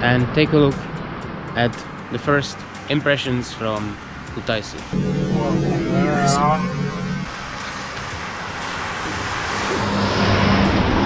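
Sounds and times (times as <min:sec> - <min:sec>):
steady low tones: 0:04.8 - 0:09.0
wavering pitched voice: 0:04.9 - 0:07.3
rushing noise: 0:04.9 - 0:11.0.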